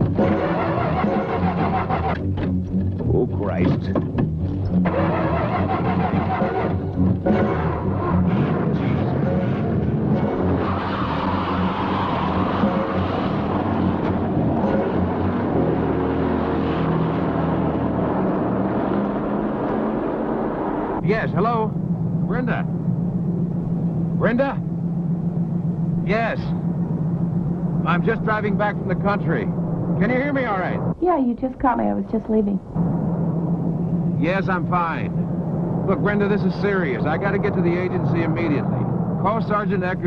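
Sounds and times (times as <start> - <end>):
film score music: 0.0 - 31.4, 32.1 - 40.0
car engine running: 0.0 - 40.0.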